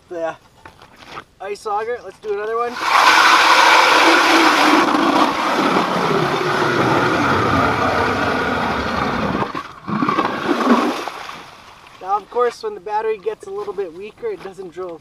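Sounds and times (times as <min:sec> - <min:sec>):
blade grinding through ice: 0:02.7 - 0:11.0
electric ice auger drilling ice: 0:02.7 - 0:11.0.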